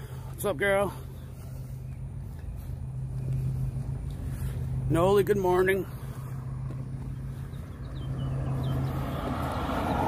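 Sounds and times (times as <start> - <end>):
vehicle hum and rumble: 0.0 - 10.0.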